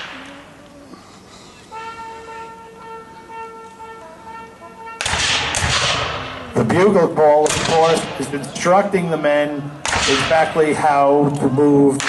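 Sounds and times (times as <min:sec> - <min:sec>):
bugle call: 0:01.6 - 0:06.6
black-powder gunfire: 0:05.0 - 0:06.5, 0:07.4 - 0:08.2, 0:09.8 - 0:10.6.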